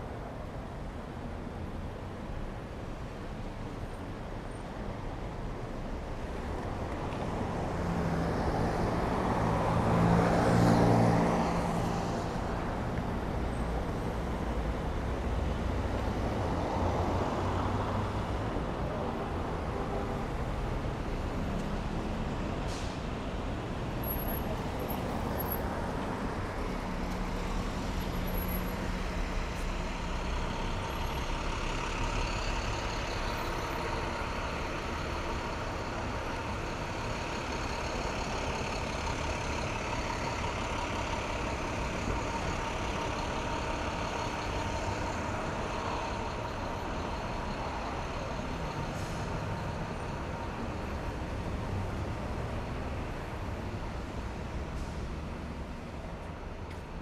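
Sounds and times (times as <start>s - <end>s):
car and truck engines: 0.0s - 57.0s.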